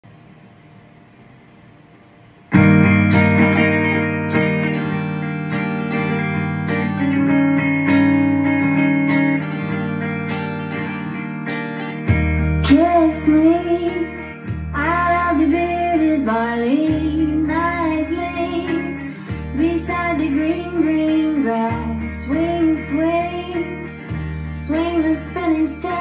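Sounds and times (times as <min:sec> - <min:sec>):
electric guitar picked melody: 0:02.5 - 0:26.0
backing track with steady beat: 0:02.6 - 0:26.0.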